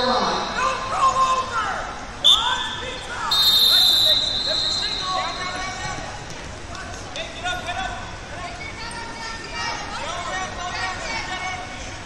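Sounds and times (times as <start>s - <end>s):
referee's whistle blasts: 2.2s - 5.7s.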